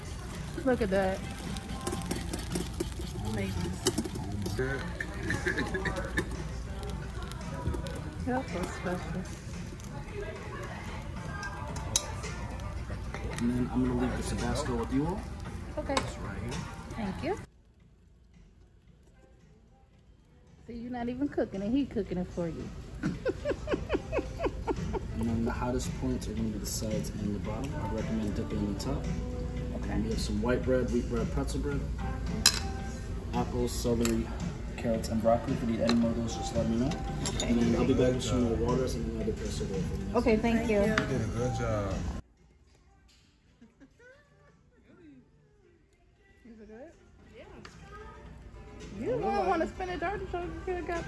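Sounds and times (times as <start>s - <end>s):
background music: 0.0s - 51.0s
people laughing: 5.0s - 6.5s, 23.0s - 25.6s.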